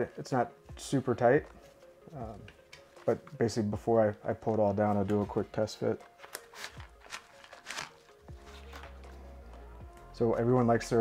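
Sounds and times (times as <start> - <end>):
soft background music: 0.0 - 11.0
magazine scraping into pouch: 6.0 - 9.1.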